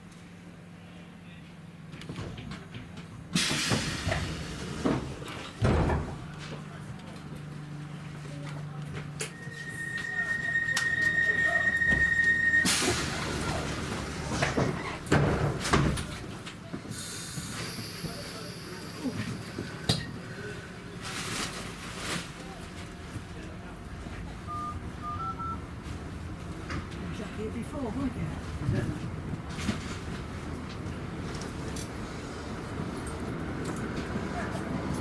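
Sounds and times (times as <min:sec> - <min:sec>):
train doors closing: 0:01.9 - 0:06.8, 0:08.9 - 0:22.4, 0:28.3 - 0:35.0
train pulling away: 0:03.3 - 0:05.3, 0:09.0 - 0:15.1, 0:16.9 - 0:21.0
short beeps: 0:09.2 - 0:13.0, 0:24.5 - 0:25.6
high warning tone: 0:09.2 - 0:13.6.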